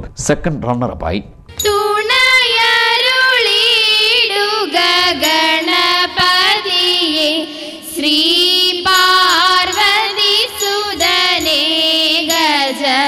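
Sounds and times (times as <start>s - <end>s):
girls singing into microphones: 1.5s - 13.0s.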